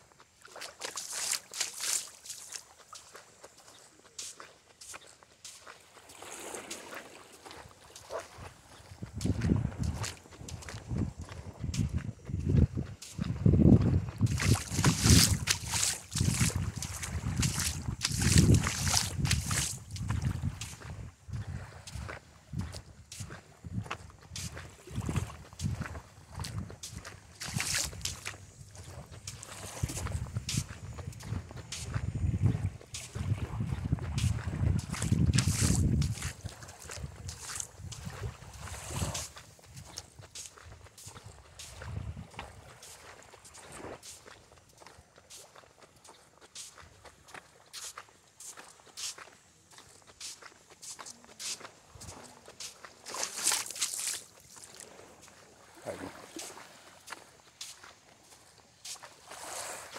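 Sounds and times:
footsteps on sand: 0:00.0 - 0:59.9
wind buffeting microphone: 0:08.8 - 0:42.8.

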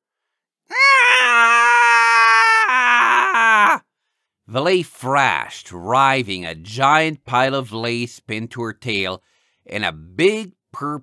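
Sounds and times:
person wailing: 0:00.7 - 0:03.8.

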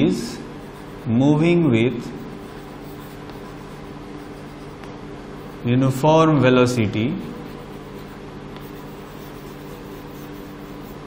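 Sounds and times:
chalk scratching on chalkboard: 0:00.6 - 0:01.1, 0:02.0 - 0:05.7, 0:07.2 - 0:11.0.

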